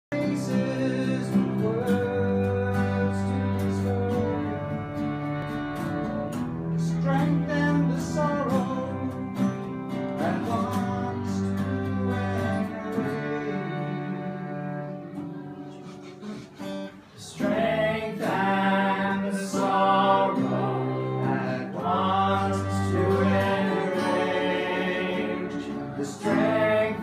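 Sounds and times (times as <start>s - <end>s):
strummed acoustic guitars: 0.1s - 27.0s
violin: 0.1s - 27.0s
bowed cello: 0.2s - 27.0s
young voices singing: 17.2s - 27.0s.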